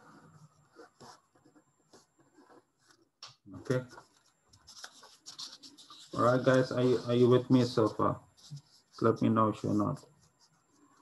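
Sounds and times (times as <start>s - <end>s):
pen scratching on paper: 0.0s - 3.0s, 4.0s - 11.0s.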